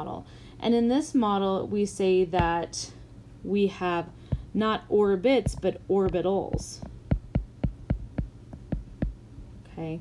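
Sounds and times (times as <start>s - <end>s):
faint low hum: 0.0s - 10.0s
stylus tapping on glass screen: 5.4s - 9.2s.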